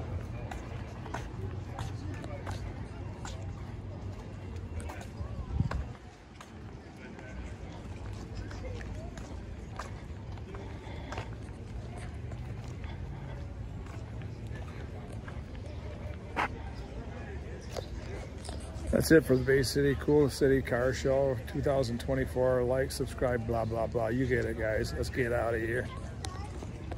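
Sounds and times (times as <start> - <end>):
footsteps: 0.0 - 20.6
people talking: 0.0 - 26.9.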